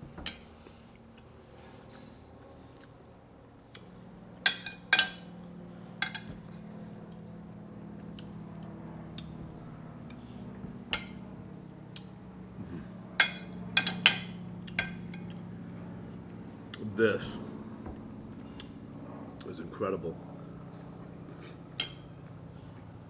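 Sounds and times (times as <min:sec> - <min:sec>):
low steady hum: 0:00.0 - 0:23.0
cutlery clinking against plate: 0:04.4 - 0:05.3, 0:06.0 - 0:06.4, 0:13.2 - 0:15.3.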